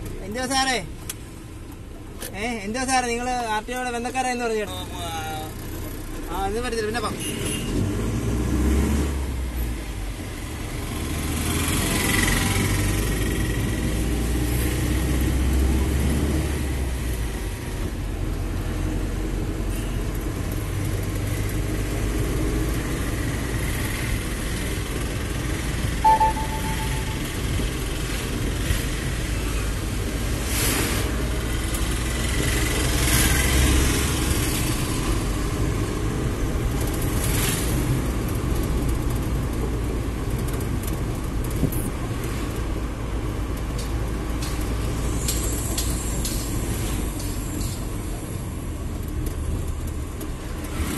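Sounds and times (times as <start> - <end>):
passing traffic rushes: 0.0 - 50.9
short high beep: 26.0 - 27.6.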